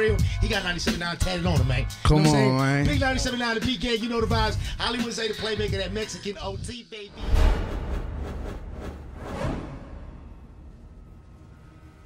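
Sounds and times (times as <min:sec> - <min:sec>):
low rumble: 0:07.2 - 0:12.0
whoosh: 0:07.2 - 0:12.0.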